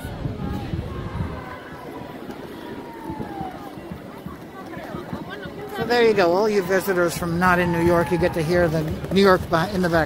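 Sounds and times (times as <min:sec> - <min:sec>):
hubbub of distant voices: 0:00.0 - 0:10.0.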